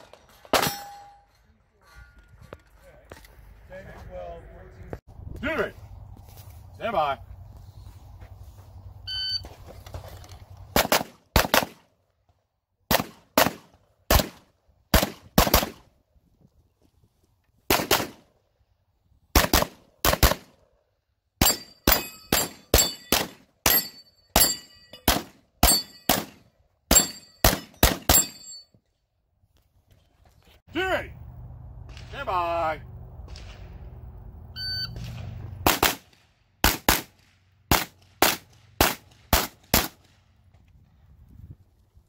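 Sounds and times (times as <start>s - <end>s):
high ringing after shots: 21.4s - 28.8s
shot timer beep: 34.6s - 35.0s.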